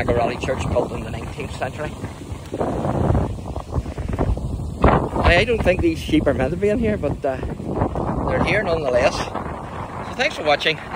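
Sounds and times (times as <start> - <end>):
wind buffeting microphone: 0.0 - 10.9.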